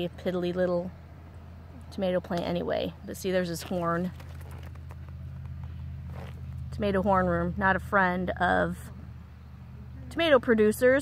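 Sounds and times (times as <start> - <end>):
woman speaking: 0.0 - 0.9, 1.8 - 4.2, 6.8 - 8.9, 10.0 - 11.0
faint rustling: 3.5 - 6.7.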